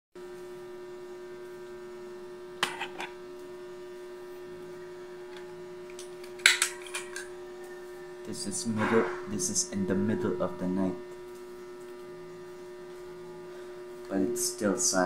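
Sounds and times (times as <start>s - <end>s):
electrical mains hum: 0.2s - 15.0s.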